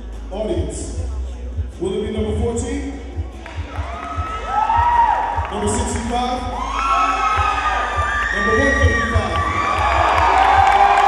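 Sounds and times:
background music with low beat: 0.0s - 11.0s
audience shouting and whooping: 3.7s - 5.5s, 6.4s - 11.0s
long high shout: 6.5s - 11.0s.

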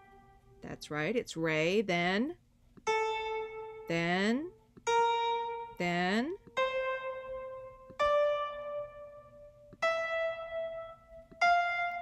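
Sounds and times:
single piano notes: 4.7s - 12.0s.

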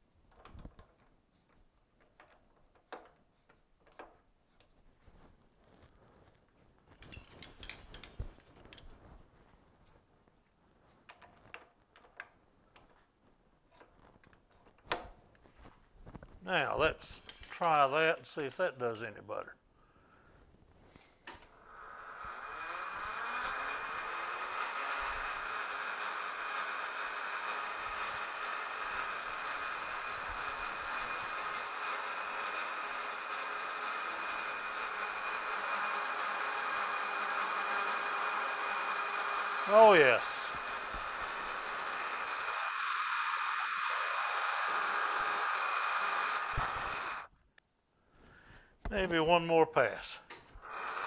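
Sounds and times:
metal lathe running with whine: 21.6s - 47.3s, 50.6s - 51.0s.

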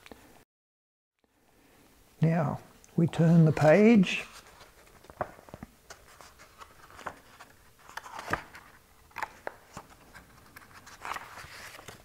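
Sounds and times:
faint page rustle: 3.0s - 12.0s.

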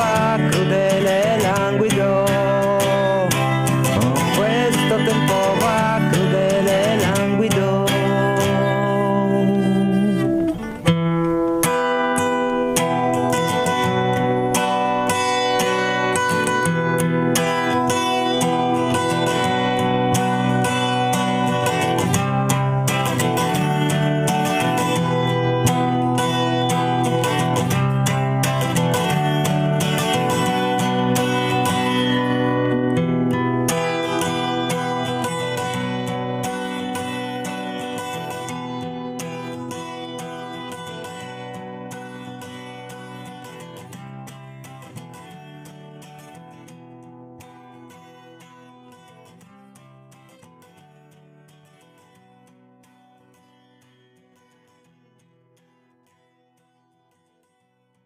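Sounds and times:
guitar plucked and strummed: 0.0s - 58.0s.

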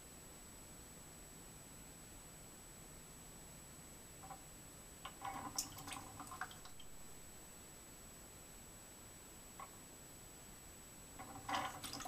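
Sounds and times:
small watery plops: 5.1s - 6.9s, 11.2s - 12.0s.

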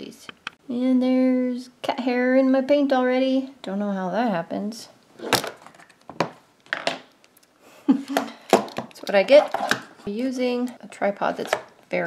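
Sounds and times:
knocks and clatters of tripod handling: 8.5s - 9.9s.

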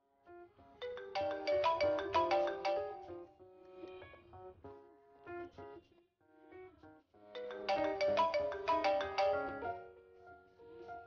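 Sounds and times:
smartphone ringtone: 0.9s - 3.3s, 7.4s - 9.9s.

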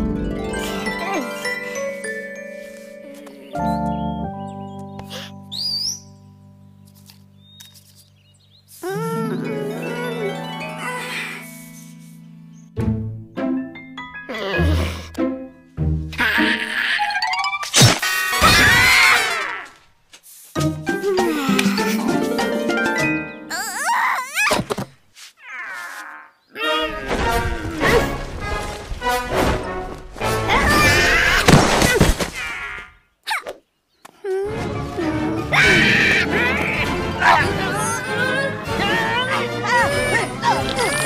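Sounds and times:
cartoon background music: 0.0s - 7.6s, 8.8s - 19.1s, 20.6s - 24.2s, 26.6s - 31.5s, 34.4s - 41.0s.

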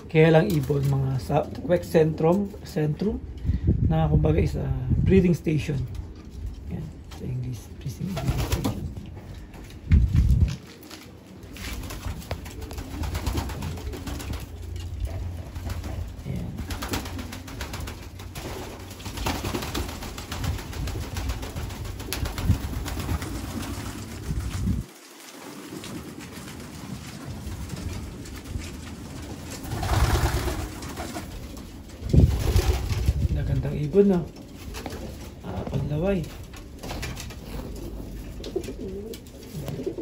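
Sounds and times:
pigeons cooing: 10.6s - 33.2s, 34.2s - 40.0s.

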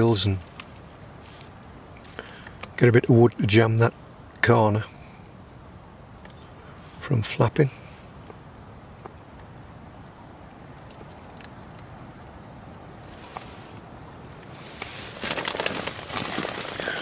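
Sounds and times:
low wind noise: 0.0s - 17.0s
polythene sheet crinkling: 14.5s - 17.0s.

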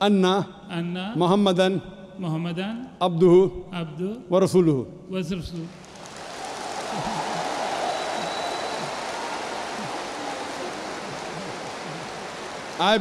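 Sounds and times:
large audience applauding: 5.6s - 13.0s.

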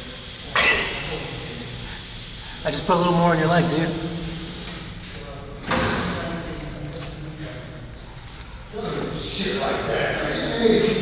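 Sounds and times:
door slam: 5.6s - 6.2s.

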